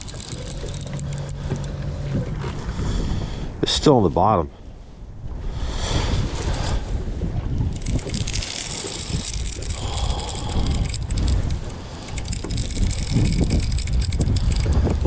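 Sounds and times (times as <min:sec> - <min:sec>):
fishing reel rapid clicks: 0:00.0 - 0:01.7, 0:07.7 - 0:14.9
wind buffeting microphone: 0:00.0 - 0:15.0.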